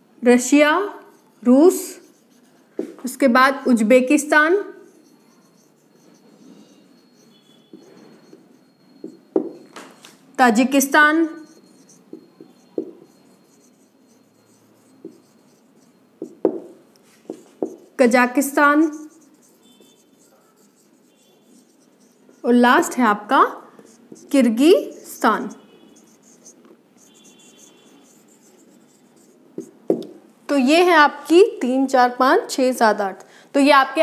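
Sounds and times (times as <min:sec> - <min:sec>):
marker writing on whiteboard: 0:00.4 - 0:30.2.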